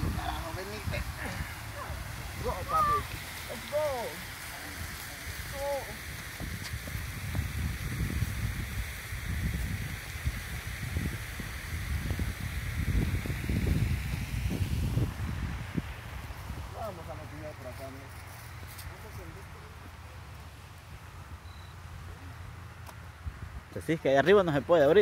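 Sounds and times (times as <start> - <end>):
fountain water falling: 0.0 - 18.0
wind buffeting microphone: 0.0 - 19.9.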